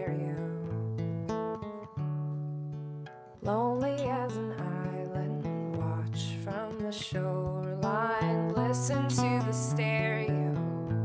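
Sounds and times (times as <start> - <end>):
woman singing: 0.0 - 1.1, 3.4 - 11.0
acoustic guitar strumming: 0.0 - 11.0.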